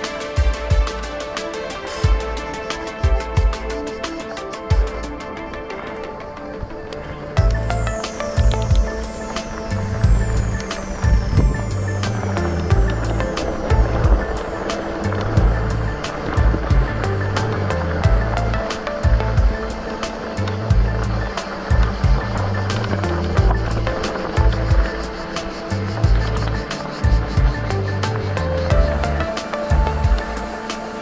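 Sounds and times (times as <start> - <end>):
background music with beat: 0.0 - 31.0
bike tyres rolling on gravel: 0.5 - 31.0.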